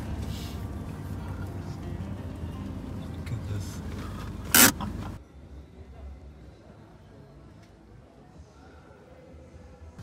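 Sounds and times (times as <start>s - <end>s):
car engine and road noise: 0.0s - 5.2s.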